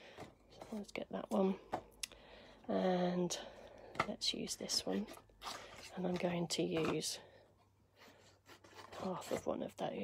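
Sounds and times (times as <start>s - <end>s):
cardstock rustling and tapping: 3.9s - 7.2s.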